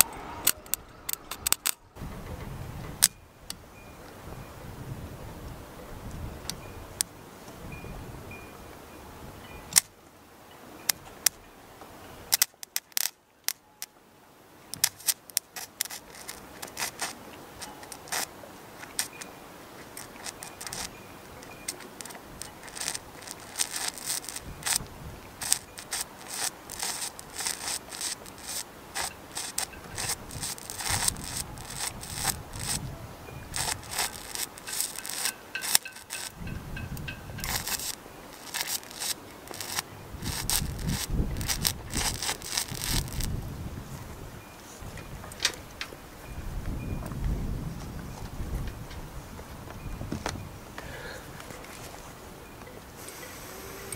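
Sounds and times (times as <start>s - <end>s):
welding arc crackling and popping: 14.8s - 18.3s, 18.9s - 19.2s, 19.8s - 43.4s.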